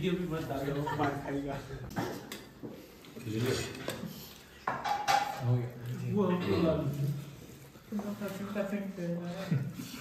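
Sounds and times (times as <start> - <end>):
dishes and cutlery clinking: 1.9 - 5.8.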